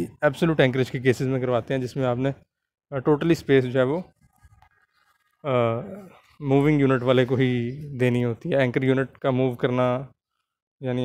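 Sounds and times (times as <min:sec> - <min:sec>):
man lecturing: 0:00.0 - 0:04.1, 0:05.5 - 0:10.1
faint small noises: 0:00.0 - 0:11.0.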